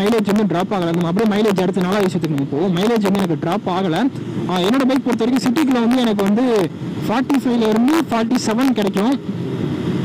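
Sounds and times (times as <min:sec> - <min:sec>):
man's voice: 0:00.0 - 0:09.2
wind rush on microphone: 0:00.0 - 0:10.0.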